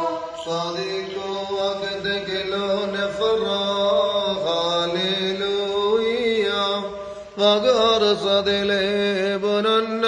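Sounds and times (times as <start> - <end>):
hymn chanting with held notes: 0.0 - 8.4.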